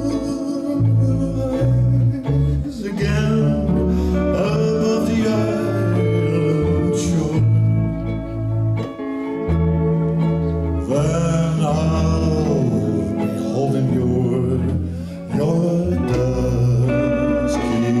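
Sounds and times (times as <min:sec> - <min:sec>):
bass: 0:00.0 - 0:18.0
guitar: 0:00.0 - 0:18.0
lap steel guitar sliding notes: 0:00.0 - 0:18.0.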